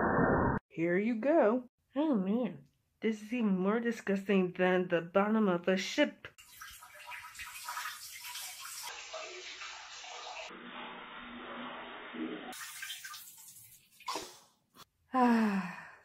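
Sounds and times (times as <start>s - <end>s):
liquid stream splashing into toilet: 6.4s - 14.4s.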